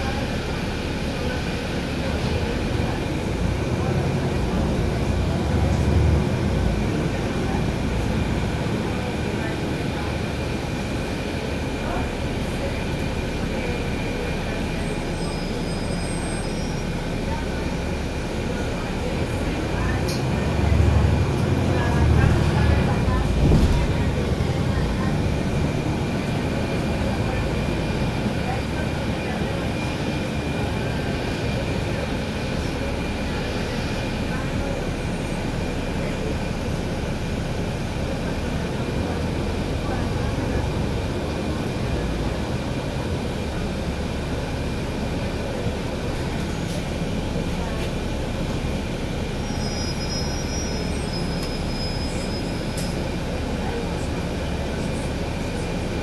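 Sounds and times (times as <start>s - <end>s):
bus engine and road noise: 0.0s - 56.0s.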